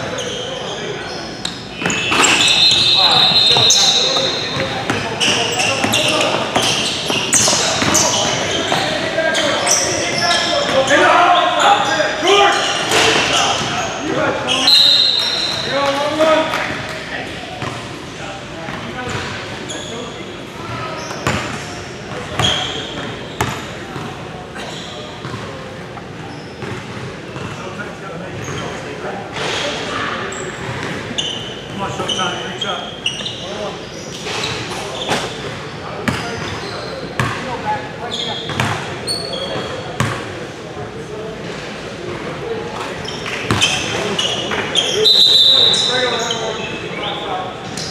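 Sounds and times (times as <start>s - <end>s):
sneakers squeaking: 0.0s - 40.4s, 41.5s - 47.9s
spectators calling in echoing gym: 0.0s - 47.9s
short high squeal: 0.2s - 4.6s.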